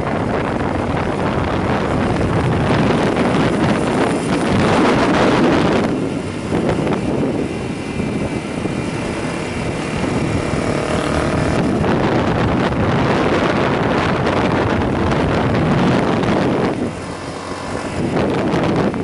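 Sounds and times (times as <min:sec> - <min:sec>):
motorcycle engine running: 0:00.0 - 0:19.0
wind buffeting microphone: 0:00.0 - 0:19.0.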